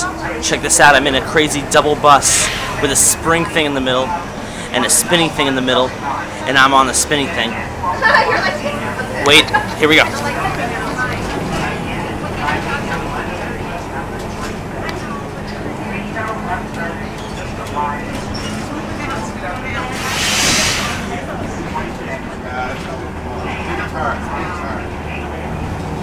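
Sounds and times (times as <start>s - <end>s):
bus engine and road drone: 0.0s - 26.0s
burst of hiss: 20.0s - 21.1s.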